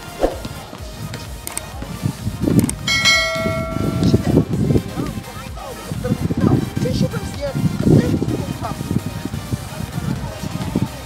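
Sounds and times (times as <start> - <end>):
bell chime notification: 2.9 - 4.7.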